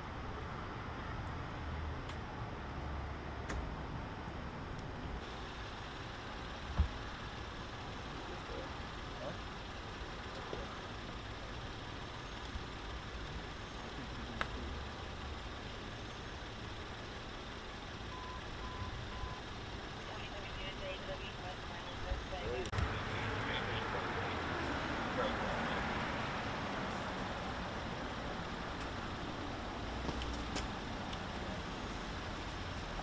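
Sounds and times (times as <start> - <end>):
traffic rumble: 0.0 - 33.0.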